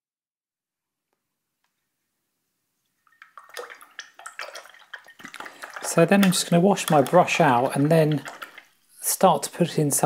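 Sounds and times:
paintbrush rinsed in water: 2.8s - 10.0s.

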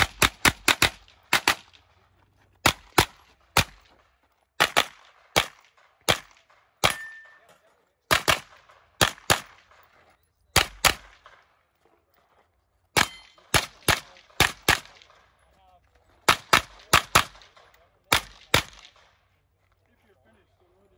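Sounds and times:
carbine gunshots: 0.0s - 2.0s, 2.6s - 4.0s, 4.6s - 7.5s, 8.1s - 11.6s, 12.9s - 15.3s, 16.2s - 19.1s.

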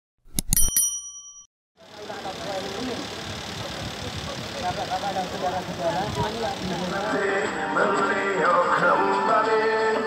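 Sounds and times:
bell-like ding: 0.4s - 1.5s
outdoor crowd and street noise: 1.8s - 10.0s.

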